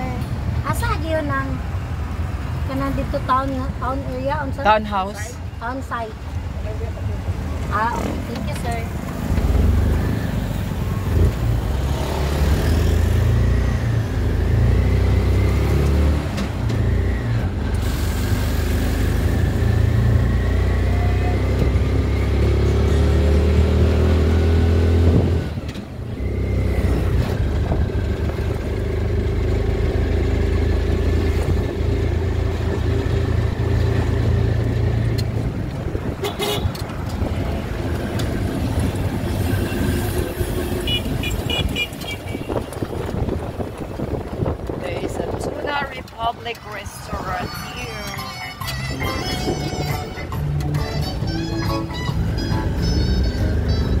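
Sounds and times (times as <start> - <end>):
vehicle engine running while driving: 6.6 - 47.6, 48.6 - 54.0.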